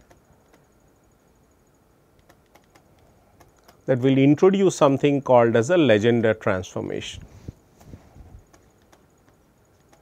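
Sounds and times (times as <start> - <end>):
stylus tapping tablet screen: 2.2 - 3.8, 7.8 - 10.0
man talking: 3.9 - 7.3.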